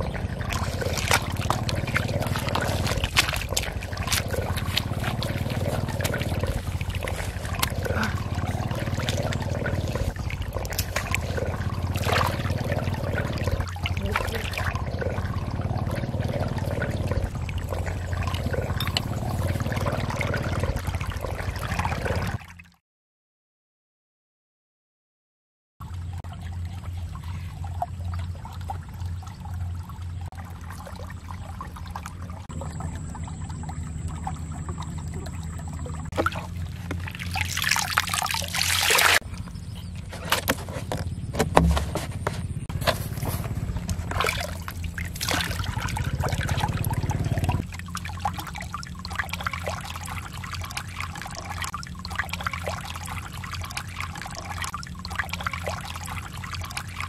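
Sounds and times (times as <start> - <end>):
water pouring out: 0.0 - 22.4, 26.3 - 39.2, 42.8 - 57.0
water splashes: 0.0 - 22.8, 25.8 - 57.0
water trickling and sloshing: 0.0 - 22.8, 25.8 - 57.0.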